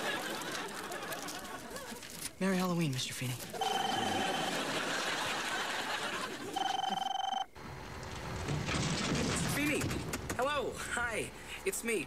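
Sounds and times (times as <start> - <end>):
telephone ringing: 3.5 - 7.6.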